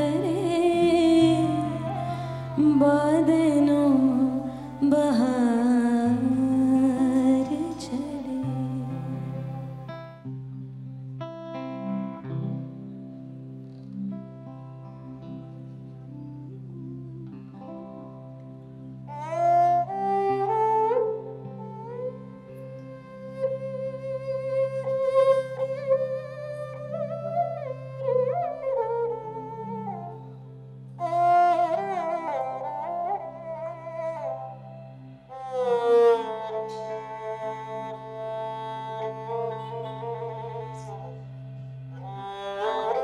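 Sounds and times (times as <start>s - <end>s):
woman singing long notes: 0.0s - 9.8s
sarangi melody with vibrato: 0.0s - 43.0s.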